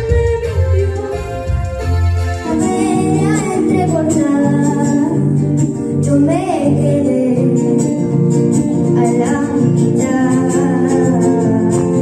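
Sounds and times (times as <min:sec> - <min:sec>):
backing music: 0:00.0 - 0:12.0
girl singing into a microphone: 0:02.4 - 0:08.2, 0:08.8 - 0:12.0.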